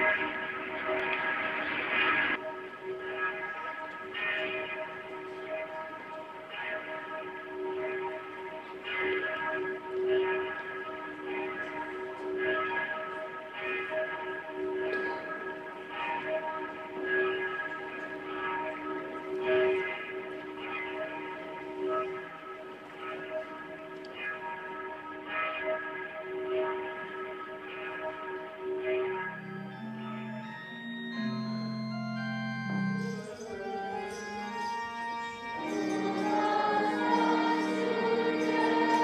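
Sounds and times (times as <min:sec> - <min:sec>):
bells ringing: 0:00.0 - 0:39.0.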